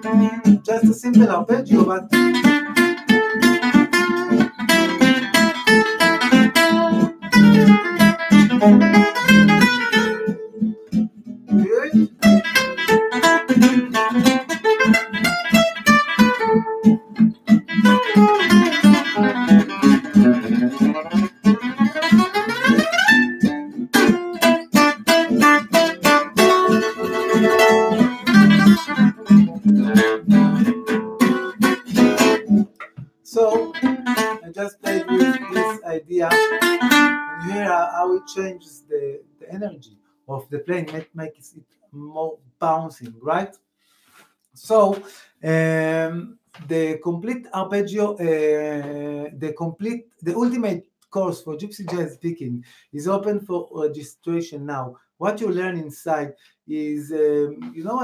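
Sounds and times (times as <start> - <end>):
acoustic guitar picked runs: 12.1 - 37.4.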